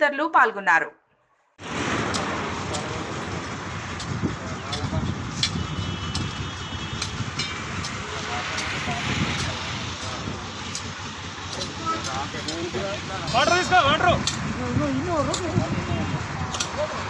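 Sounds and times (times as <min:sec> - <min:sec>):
road traffic: 0:01.6 - 0:17.0.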